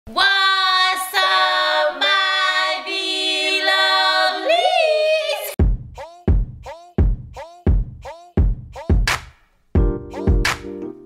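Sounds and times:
women singing held notes: 0:00.1 - 0:05.6.

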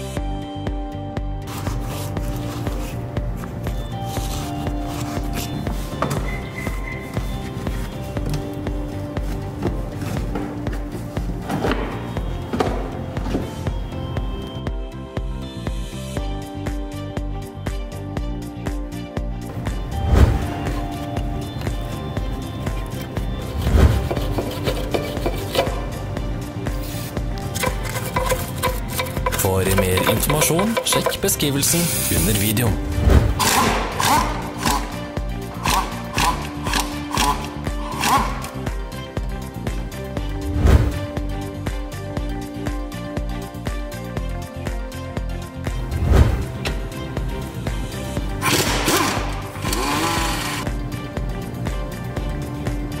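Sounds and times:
background music: 0:00.0 - 0:53.0
wire brush scrubbing metal: 0:23.6 - 0:26.0, 0:26.8 - 0:32.3
power wrench spinning: 0:27.4 - 0:31.2, 0:33.4 - 0:38.6, 0:48.4 - 0:50.7.

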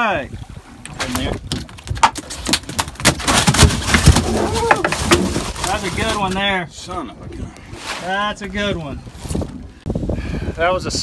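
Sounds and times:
fish thrashing in box: 0:01.0 - 0:06.3.

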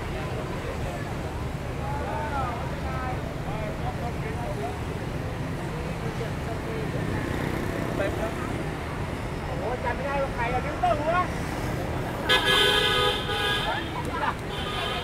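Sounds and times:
passers-by talking: 0:00.0 - 0:15.0
road traffic: 0:00.0 - 0:15.0
vehicle horn: 0:12.3 - 0:13.8, 0:14.5 - 0:15.0.

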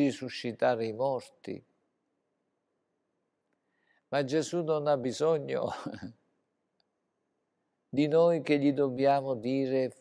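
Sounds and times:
man speaking: 0:00.0 - 0:01.7, 0:04.1 - 0:06.2, 0:07.9 - 0:10.0.

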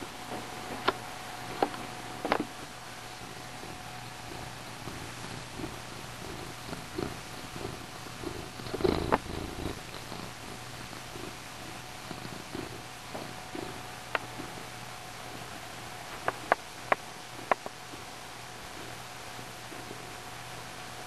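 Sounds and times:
cat purring: 0:00.8 - 0:21.0.

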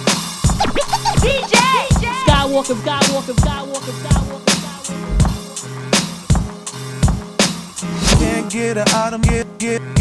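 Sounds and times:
hip hop beat: 0:00.4 - 0:07.2
record scratching on a turntable: 0:00.5 - 0:03.0
kick drum hits: 0:05.1 - 0:05.4.

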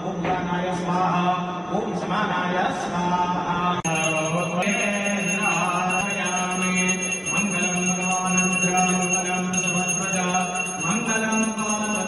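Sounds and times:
man chanting: 0:02.2 - 0:12.0
high ringing tones: 0:03.8 - 0:12.0.

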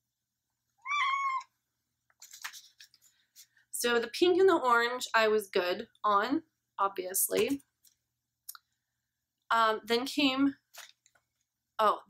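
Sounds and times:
cat meowing: 0:00.8 - 0:01.6.

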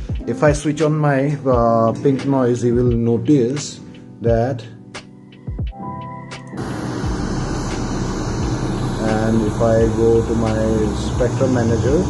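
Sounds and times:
pink noise hiss: 0:06.6 - 0:12.0.

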